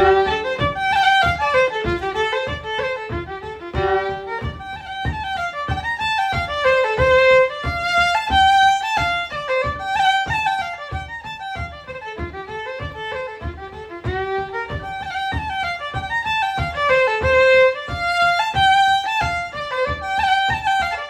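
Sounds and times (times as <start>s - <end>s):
solo fiddle playing: 0.0s - 21.0s.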